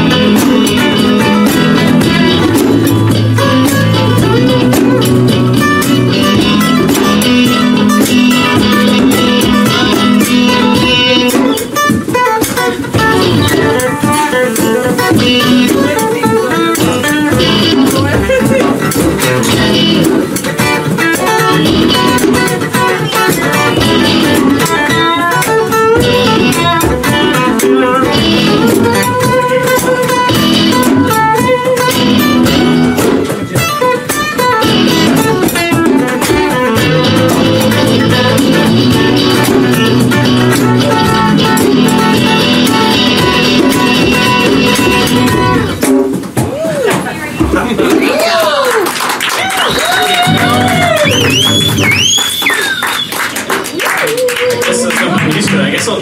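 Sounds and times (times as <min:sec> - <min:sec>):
acoustic guitar: 0:00.0 - 0:56.0
electric guitar: 0:00.0 - 0:56.0.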